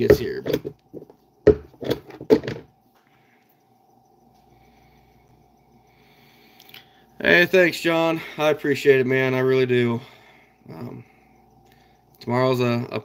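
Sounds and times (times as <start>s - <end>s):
sharp handling knocks: 0.0s - 2.7s
faint steady hum: 0.0s - 13.0s.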